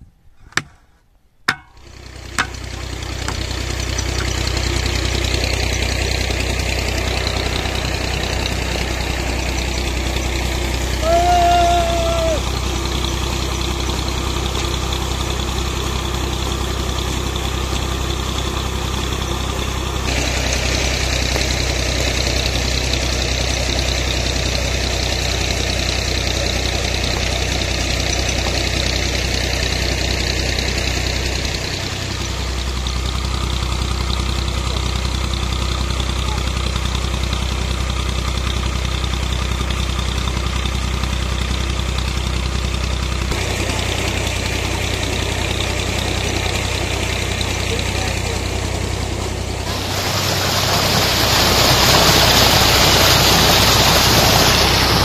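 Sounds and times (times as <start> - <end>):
diesel engine fast idle: 1.8 - 55.0
bright hiss: 49.7 - 55.0.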